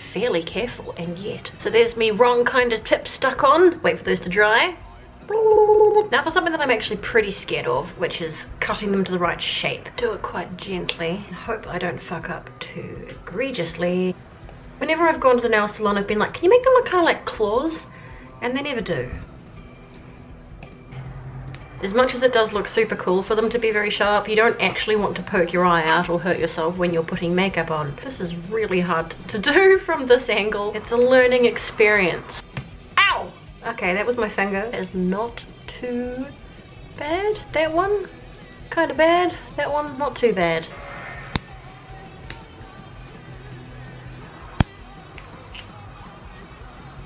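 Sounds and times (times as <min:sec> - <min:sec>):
quiet background music: 0:00.0 - 0:47.0
scissors snipping: 0:42.3 - 0:42.5, 0:44.6 - 0:45.3.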